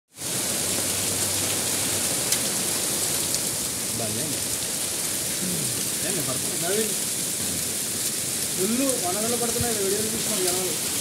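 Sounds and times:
heavy rain and hail: 0.1s - 11.0s.

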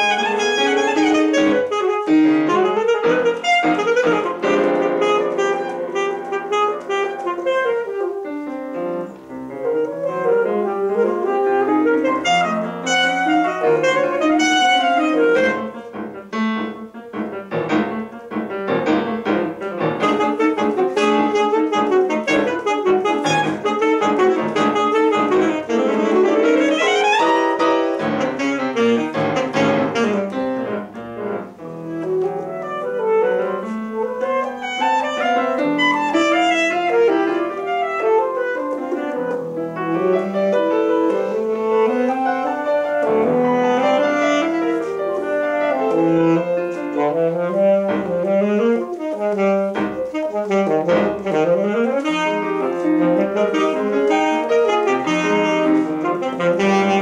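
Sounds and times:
alto saxophone: 0.0s - 57.0s
grand piano: 0.0s - 57.0s.

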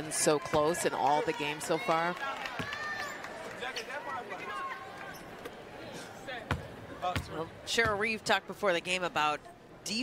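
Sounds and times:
arena murmur with faint voices: 0.0s - 10.0s.

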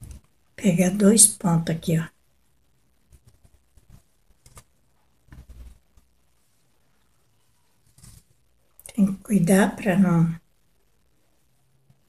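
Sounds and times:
ribbon and needle rustling: 2.9s - 9.0s.

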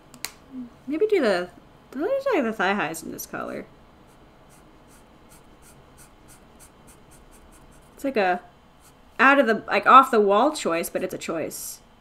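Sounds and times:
marker rubbing on paper: 4.1s - 8.0s.

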